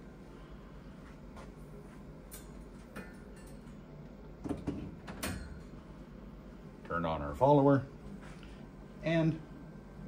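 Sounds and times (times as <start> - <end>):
clicks and knocks on gas boilers: 4.4 - 5.8.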